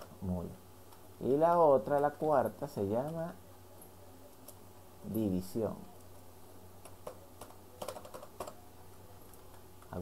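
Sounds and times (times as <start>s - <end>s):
faint low hum: 0.0s - 10.0s
keyboard keystrokes: 6.8s - 8.6s.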